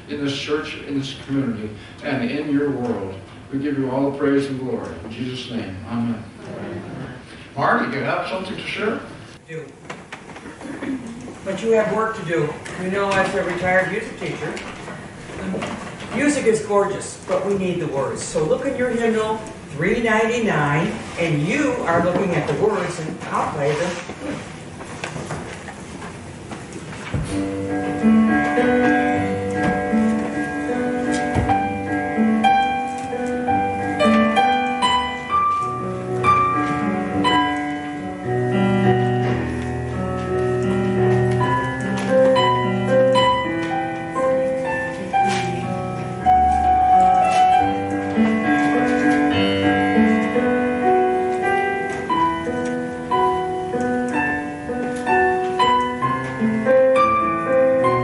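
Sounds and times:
electronic keyboard playing hymn: 25.7s - 58.0s.

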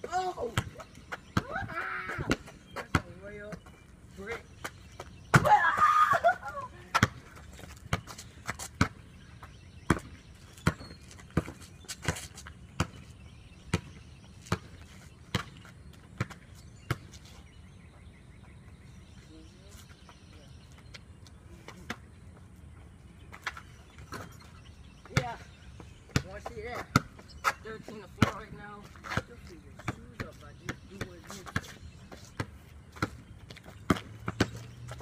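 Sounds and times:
basketball bouncing on concrete: 0.4s - 5.9s, 6.8s - 17.2s, 24.0s - 35.0s.

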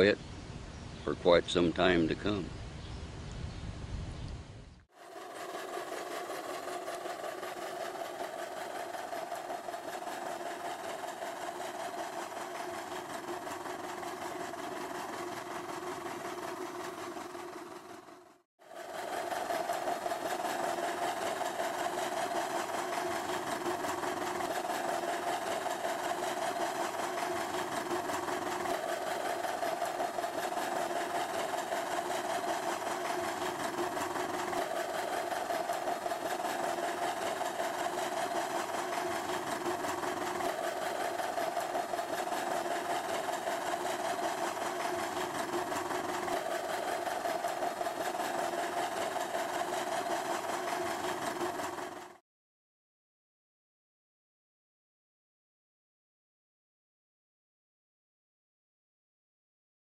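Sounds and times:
tractor engine running under load: 4.9s - 52.2s.

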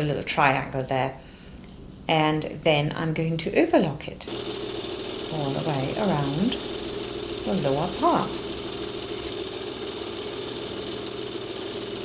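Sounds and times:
overlocker sewing machine running: 4.3s - 12.0s.

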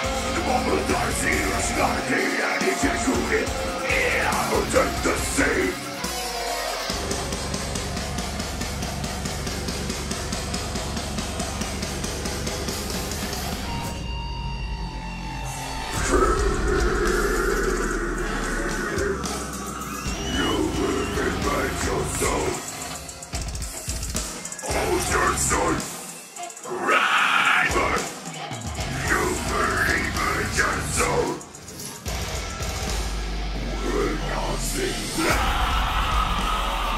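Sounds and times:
heavy metal band playing live: 0.0s - 36.9s
bass guitar and drum hits: 6.9s - 22.6s
screamed vocal: 15.8s - 22.7s, 26.6s - 28.1s, 33.8s - 36.9s.

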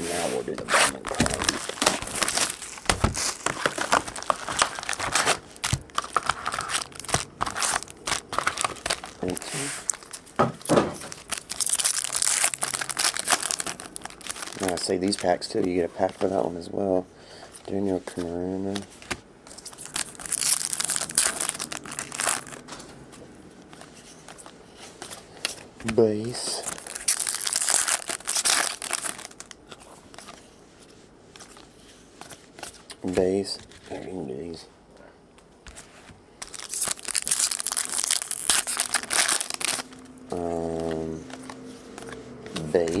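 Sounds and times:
foil wrapper crinkling and tearing: 0.9s - 16.4s, 19.5s - 22.7s, 26.0s - 30.4s, 36.4s - 43.0s.

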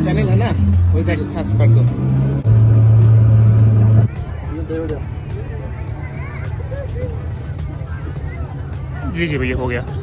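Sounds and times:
motorboat engine droning: 0.6s - 4.4s.

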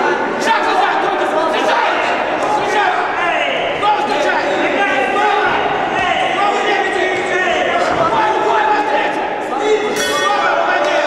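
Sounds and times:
men shouting: 0.3s - 11.0s.

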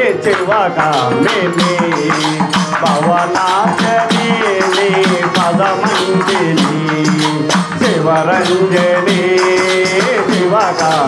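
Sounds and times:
hand drum beat: 0.0s - 11.0s
man singing into a microphone: 0.0s - 11.0s.

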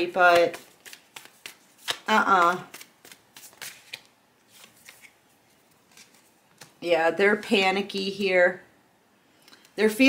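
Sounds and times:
cards shuffle rustle: 0.0s - 6.8s.

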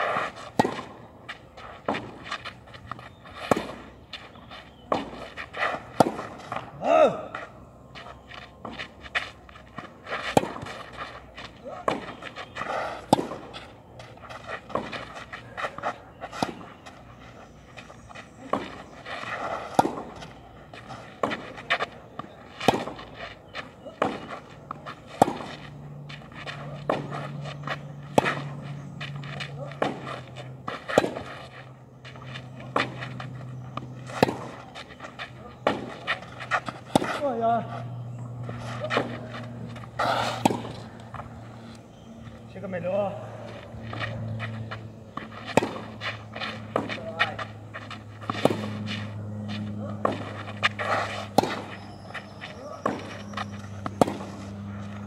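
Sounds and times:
racket striking ball: 0.1s - 1.0s, 1.8s - 4.0s, 4.8s - 7.4s, 10.1s - 16.7s, 18.4s - 23.1s, 23.8s - 28.6s, 29.2s - 31.5s, 32.1s - 37.8s, 38.4s - 41.4s, 43.5s - 55.0s
players exhaling: 40.0s - 40.5s.

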